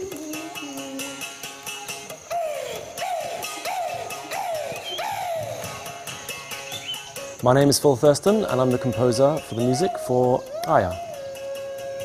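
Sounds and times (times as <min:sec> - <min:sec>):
mouth bow sliding notes: 0:08.3 - 0:12.0.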